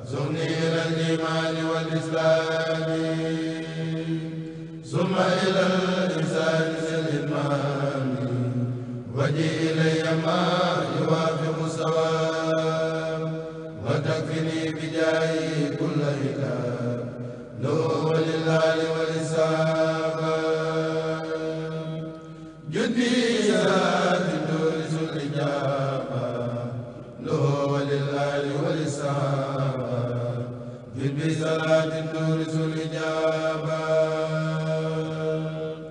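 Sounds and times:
men chanting in unison: 0:00.0 - 0:35.9.

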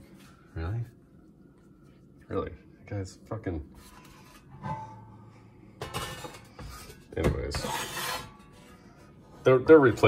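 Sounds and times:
metal scraping: 0:03.7 - 0:10.0
metal plate shifted on hard surface: 0:03.8 - 0:05.2.

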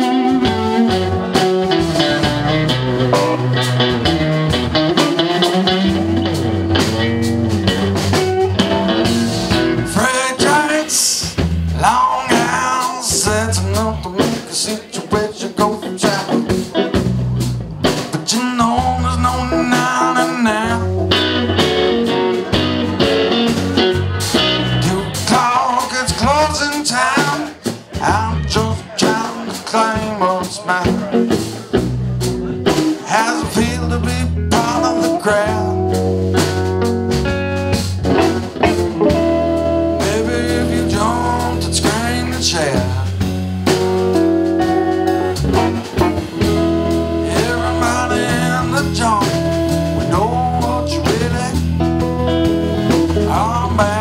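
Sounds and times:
bending electric guitar lines: 0:00.0 - 0:54.0
blues-rock band playing: 0:00.0 - 0:54.0
person singing: 0:09.0 - 0:16.7, 0:17.9 - 0:31.7, 0:32.6 - 0:36.1, 0:38.6 - 0:43.8, 0:44.6 - 0:51.9, 0:52.9 - 0:54.0.

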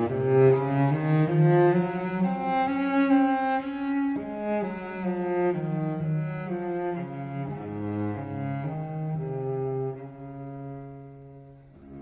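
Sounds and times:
slow bowed string melody: 0:00.0 - 0:12.0.

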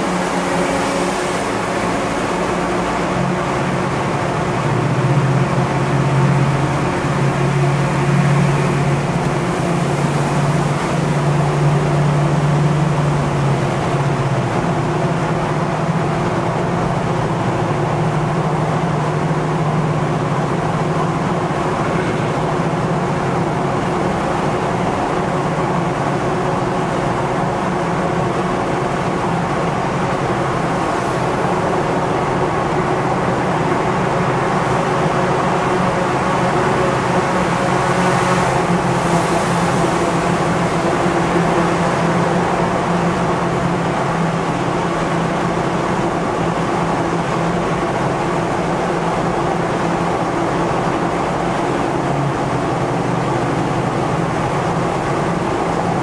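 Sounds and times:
car engine and road drone: 0:00.0 - 0:56.0.

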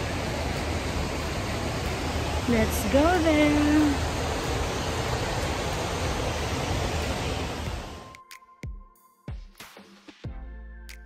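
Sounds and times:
steady rushing noise: 0:00.0 - 0:08.2.

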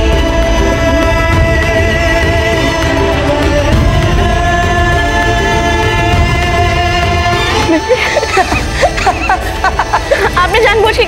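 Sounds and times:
music with long held notes: 0:00.0 - 0:11.0.

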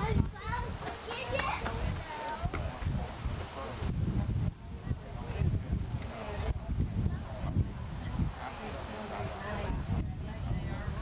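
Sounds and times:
children's voices: 0:00.0 - 0:02.8
chatter of people talking: 0:00.0 - 0:11.0
low microphone rumble: 0:00.0 - 0:11.0.

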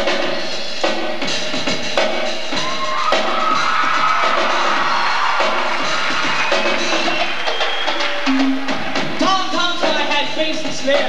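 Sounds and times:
drum kit solo: 0:00.0 - 0:11.0.

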